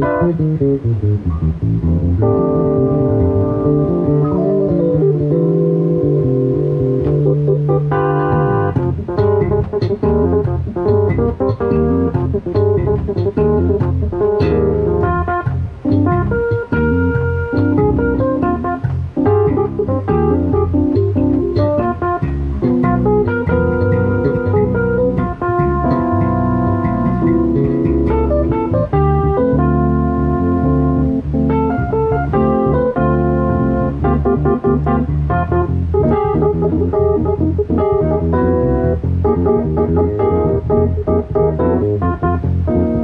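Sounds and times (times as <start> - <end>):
electric bass: 0.0 - 43.0
stage keyboard playing: 0.0 - 43.0.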